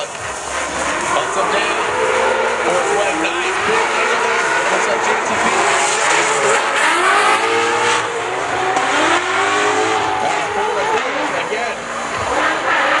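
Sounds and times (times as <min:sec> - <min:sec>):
car engine revving hard: 0:00.0 - 0:13.0.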